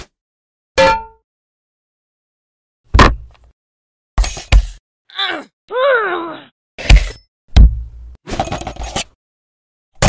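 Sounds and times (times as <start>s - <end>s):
cartoon-like groan: 5.1s - 6.5s
high vocal whimper: 5.1s - 6.5s.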